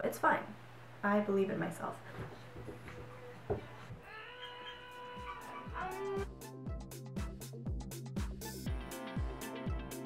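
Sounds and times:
cat-like meow: 0:04.1 - 0:06.2
music with a steady beat: 0:05.7 - 0:10.0.

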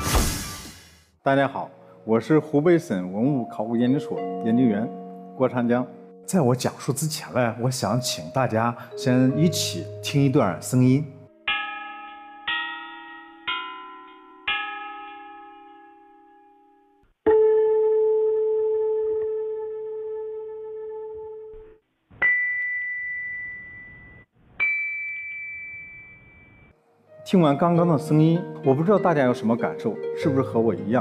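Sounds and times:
bronze chime bells struck: 0:11.5 - 0:16.8, 0:22.2 - 0:26.8
loud low bell ringing: 0:11.5 - 0:16.8.

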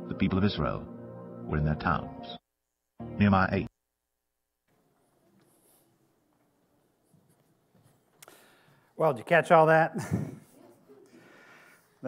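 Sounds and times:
soft rustles: 0:04.9 - 0:08.8.

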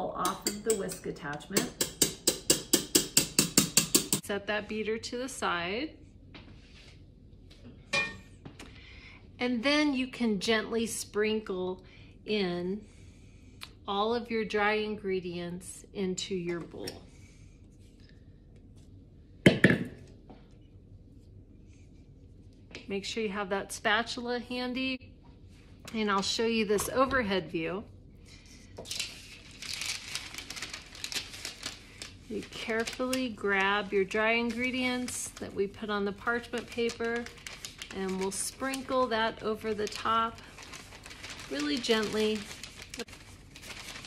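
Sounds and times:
whisk knocking on metal bowl: 0:00.2 - 0:04.2.

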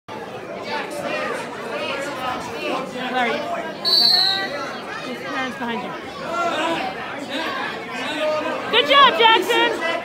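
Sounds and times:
voices chattering: 0:00.1 - 0:10.0
referee's whistle blast: 0:03.9 - 0:04.6.

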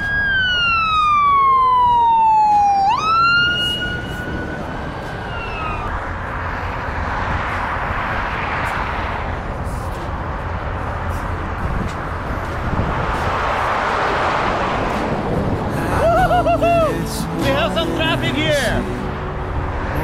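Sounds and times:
emergency siren wailing: 0:00.0 - 0:06.8
road and wind noise: 0:00.0 - 0:20.0.

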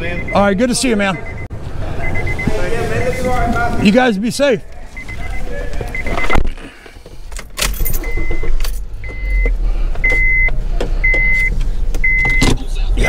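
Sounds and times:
car warning chime beeps: 0:00.0 - 0:06.4, 0:07.7 - 0:12.8
car engine hum: 0:00.0 - 0:13.0.

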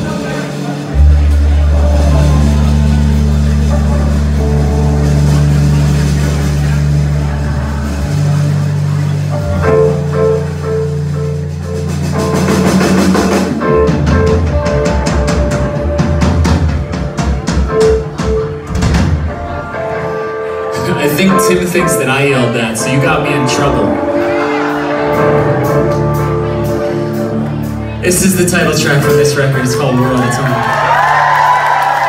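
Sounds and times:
low bass drone: 0:00.0 - 0:17.0, 0:22.8 - 0:29.2
drum kit hits: 0:11.6 - 0:19.7.

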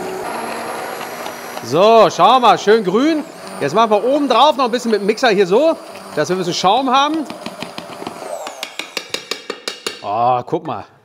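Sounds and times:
immersion blender sputtering: 0:00.0 - 0:09.4.

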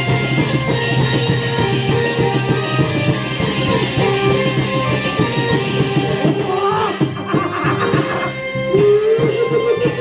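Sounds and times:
opera band accompaniment: 0:00.0 - 0:10.0
plucked and struck beats: 0:00.0 - 0:10.0.

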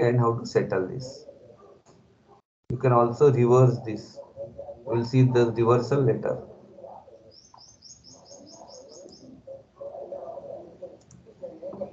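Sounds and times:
bird chirping: 0:03.9 - 0:11.9.

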